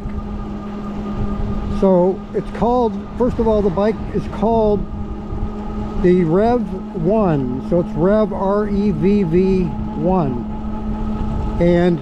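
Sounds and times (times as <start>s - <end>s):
low hum of moving bike: 0.0s - 12.0s
wind rumbling on microphone: 0.0s - 12.0s
man's voice: 1.8s - 4.8s, 6.0s - 10.5s, 11.6s - 12.0s.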